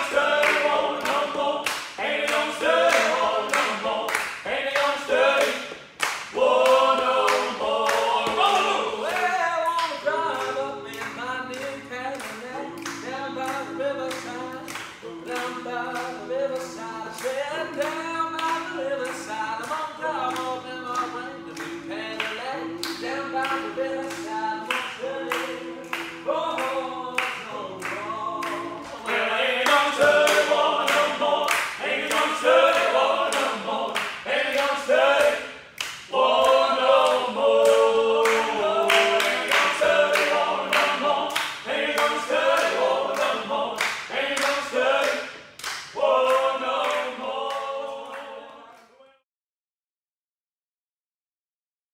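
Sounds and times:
voices singing in harmony: 0.0 - 49.2.

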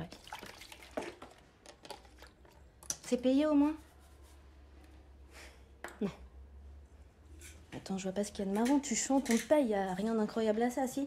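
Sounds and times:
dishes and utensils clicking: 8.6 - 9.6.

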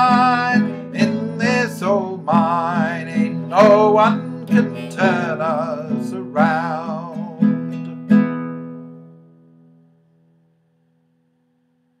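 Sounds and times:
classical guitar chord ringing: 0.0 - 11.6.

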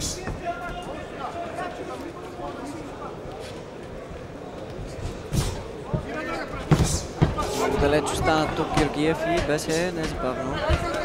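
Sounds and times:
people shouting: 6.2 - 11.0.

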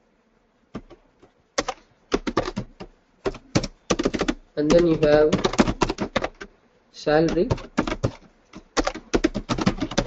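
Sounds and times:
computer keyboard typing: 0.7 - 6.5, 7.2 - 10.0.

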